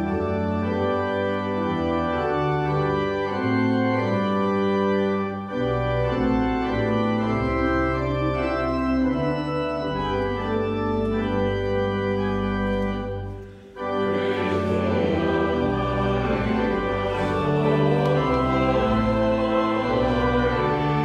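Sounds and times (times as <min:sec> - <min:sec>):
church organ playing chords: 0:00.0 - 0:21.0.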